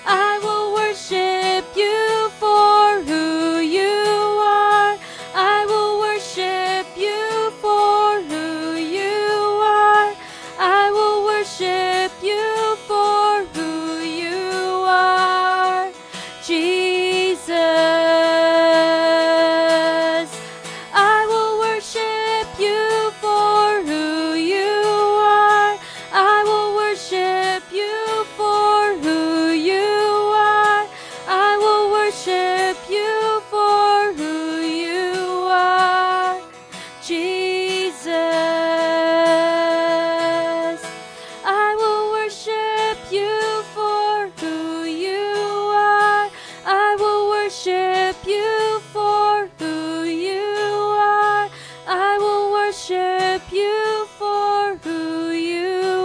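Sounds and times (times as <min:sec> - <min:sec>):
soft instrumental accompaniment: 0:00.0 - 0:56.0
woman singing with vibrato: 0:00.0 - 0:56.0.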